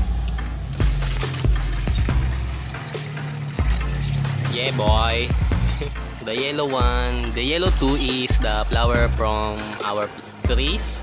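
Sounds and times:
music with steady beat: 0:00.0 - 0:11.0
water running from hose into basin: 0:00.0 - 0:11.0.

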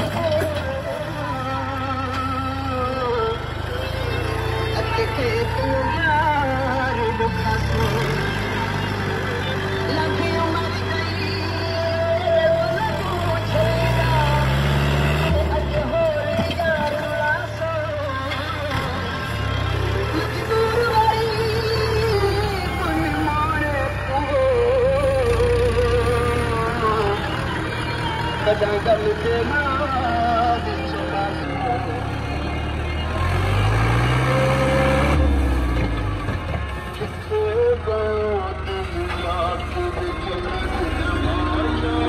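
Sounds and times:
music with singing voice: 0:00.0 - 0:42.0
tractor diesel engine under load: 0:00.0 - 0:42.0.

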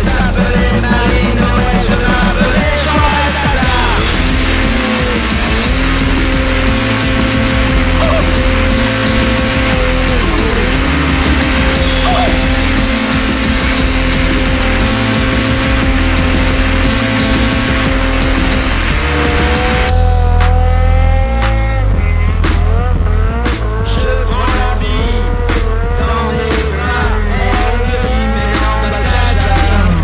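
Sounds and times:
snowmobile engine running: 0:00.0 - 0:30.0.

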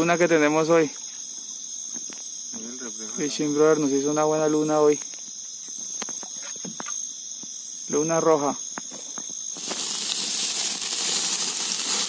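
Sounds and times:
night insects chorus: 0:00.0 - 0:12.0.

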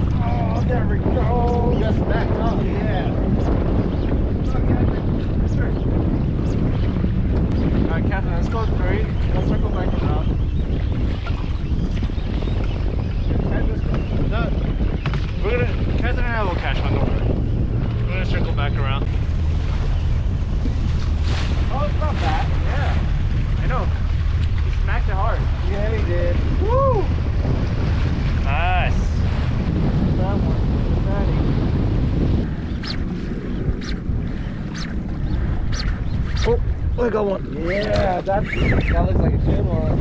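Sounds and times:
outboard motor humming: 0:00.0 - 0:40.0
wind rumbling on microphone: 0:00.0 - 0:40.0.

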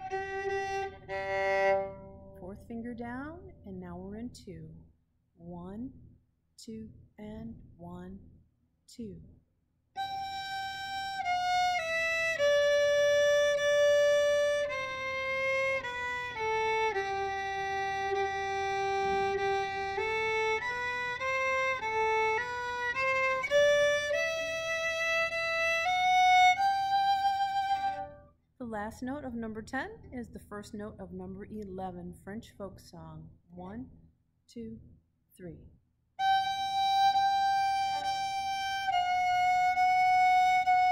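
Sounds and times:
solo violin slow melody: 0:00.0 - 0:02.4, 0:10.0 - 0:28.3, 0:36.2 - 0:40.9.

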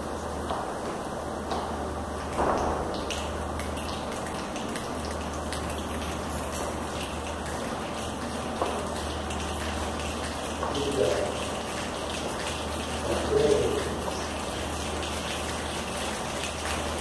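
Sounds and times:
rain hiss with dripping clicks: 0:00.5 - 0:17.0.

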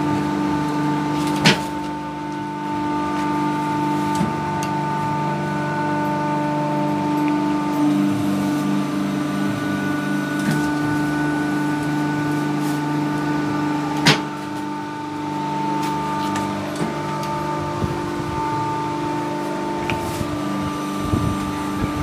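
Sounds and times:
machine electric hum: 0:00.0 - 0:22.0.

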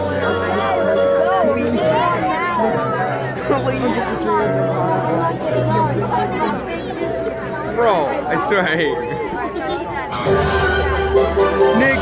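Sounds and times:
crowd chatter: 0:00.0 - 0:12.0
music with held bass notes: 0:10.2 - 0:12.0.

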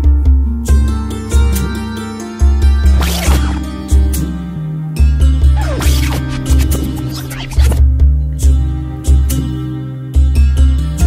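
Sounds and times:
music with pulsing bass beat: 0:00.0 - 0:09.4
scratchy sliding sound effects: 0:03.0 - 0:03.8, 0:05.5 - 0:07.8.

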